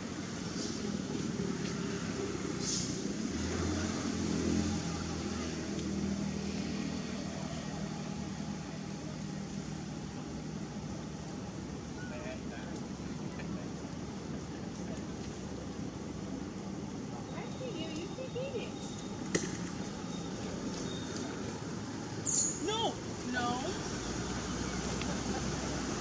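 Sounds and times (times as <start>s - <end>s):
voices: 0.0s - 26.0s.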